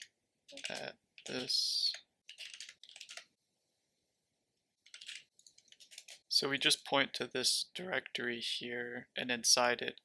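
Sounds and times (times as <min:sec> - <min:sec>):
keyboard typing: 0:00.0 - 0:03.4, 0:04.8 - 0:06.3.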